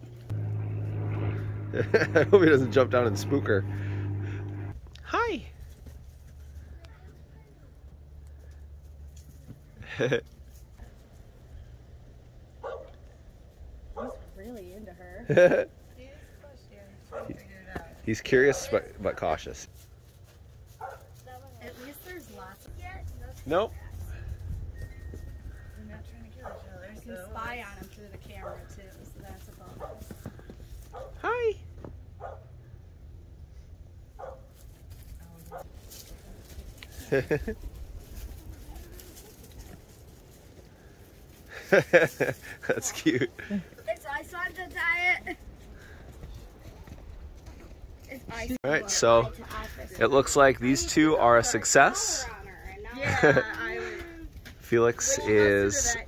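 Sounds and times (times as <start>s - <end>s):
low background rumble: 0.0s - 4.9s.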